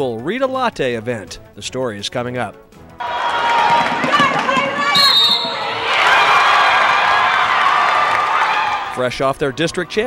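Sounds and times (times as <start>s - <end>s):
crowd noise and voices: 3.0s - 10.0s
basketball bouncing: 3.6s - 6.0s.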